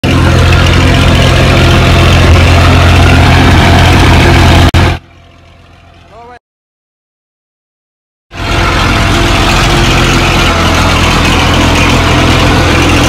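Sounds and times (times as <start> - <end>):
tractor diesel engine running: 0.0 - 6.4, 8.3 - 13.0.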